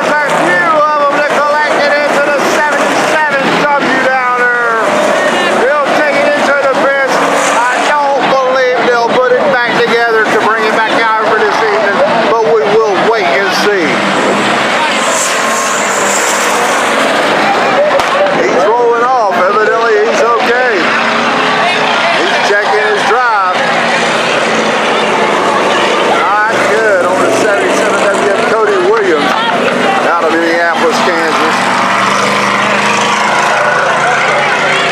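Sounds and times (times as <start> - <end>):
announcer speaking over loudspeakers: 0.0 - 34.9
race car engines revving past: 0.0 - 34.9.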